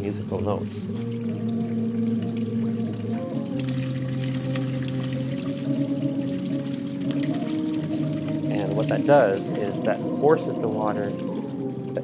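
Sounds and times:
water jets hissing and splashing: 0.0 - 12.0
water organ sustained notes: 0.0 - 12.0.

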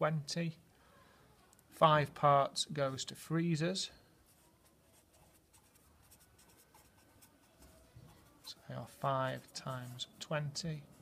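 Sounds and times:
pen scratching on paper: 4.3 - 10.2.

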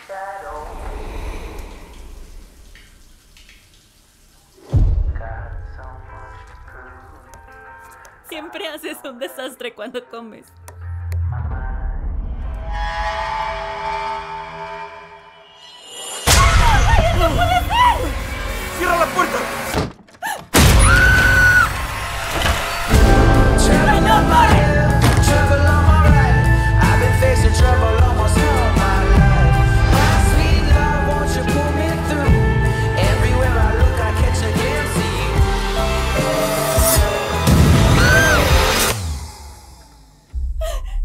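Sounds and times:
low rumble: 0.4 - 3.6, 4.7 - 7.0
woman screaming: 16.3 - 18.2, 20.2 - 21.8, 36.2 - 38.7.

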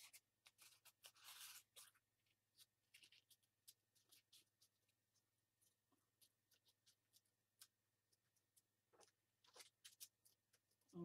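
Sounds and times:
paper bag crinkling: 0.0 - 4.9.

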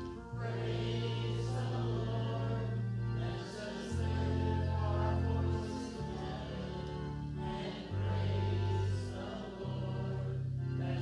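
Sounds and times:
congregation singing: 0.0 - 11.0
instrumental long bass notes: 0.0 - 11.0.

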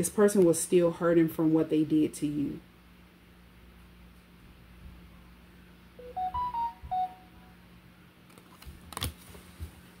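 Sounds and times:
electronic beeping jingle: 6.0 - 7.5.

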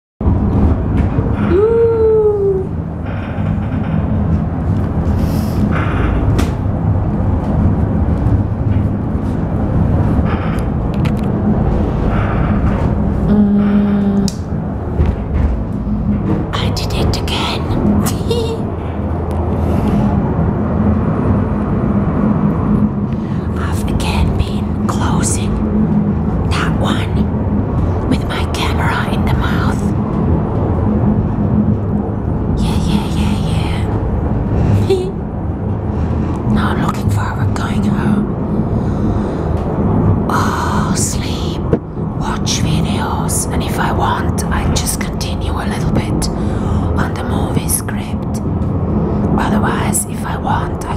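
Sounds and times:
cable car rumble and hum: 0.2 - 50.9.

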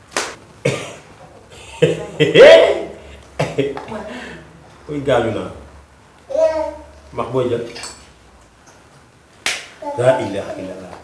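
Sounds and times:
sharp snap: 0.1 - 0.4, 9.4 - 9.8.

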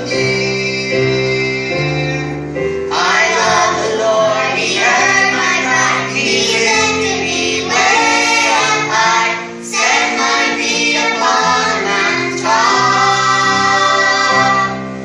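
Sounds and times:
children singing gospel song: 0.0 - 15.0.

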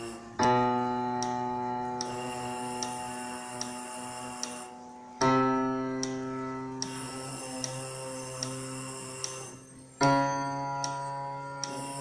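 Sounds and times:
metronome ticking: 0.0 - 12.0
trombone mouthpiece buzzing: 0.0 - 12.0.

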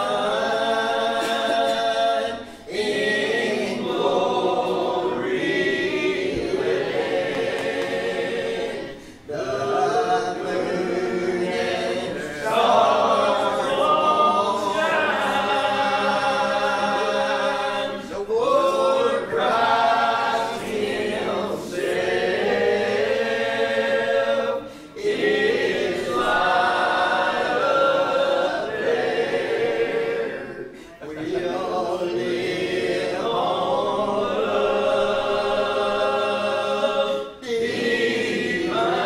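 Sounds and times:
group singing a hymn: 0.0 - 39.0.

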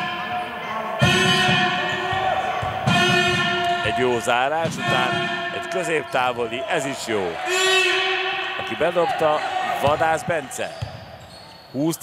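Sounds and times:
basketball dribbling: 1.0 - 4.0.

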